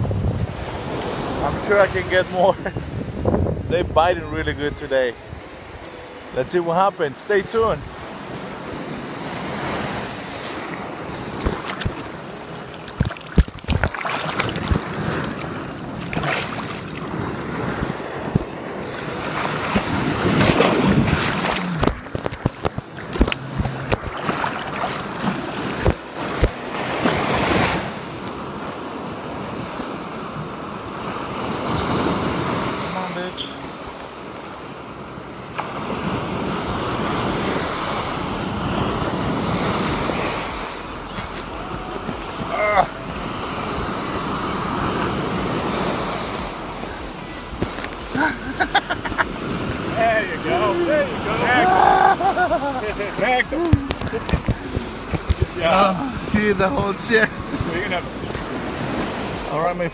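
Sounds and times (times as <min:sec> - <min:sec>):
wind buffeting microphone: 0:00.0 - 0:05.9, 0:07.6 - 0:28.2, 0:52.9 - 0:59.5
surf washing on beach: 0:00.0 - 0:59.9.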